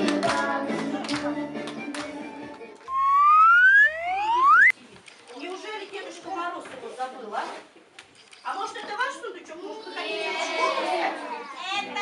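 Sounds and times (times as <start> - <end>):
rising whistle sound effect: 2.9 - 4.7.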